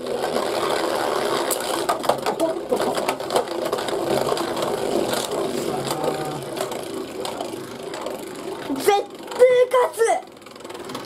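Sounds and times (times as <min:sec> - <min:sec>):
spinning tops clacking: 0:00.0 - 0:11.0
spinning tops whirring rattle: 0:00.0 - 0:11.0.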